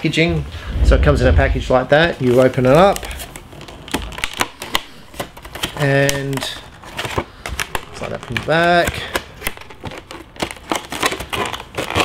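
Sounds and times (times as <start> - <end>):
plastic package clicks and crackles: 2.3 - 12.0.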